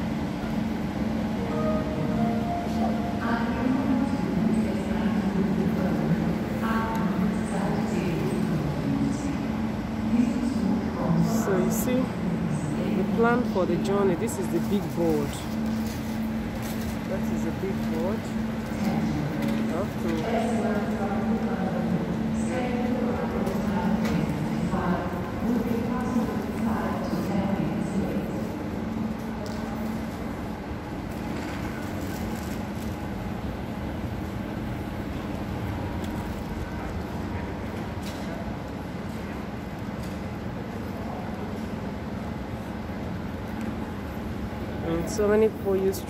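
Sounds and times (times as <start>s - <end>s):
background din of hall: 0.0s - 46.0s.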